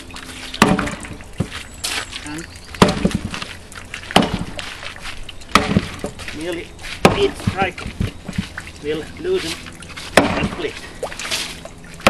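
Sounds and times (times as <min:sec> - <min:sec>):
axe chopping wood: 0:00.6 - 0:01.5, 0:02.8 - 0:03.5, 0:04.1 - 0:04.6, 0:05.5 - 0:06.2, 0:07.0 - 0:08.5, 0:10.0 - 0:10.7
wood splitting: 0:00.6 - 0:01.5, 0:02.8 - 0:04.7, 0:05.5 - 0:06.4, 0:07.0 - 0:08.5, 0:10.0 - 0:11.6.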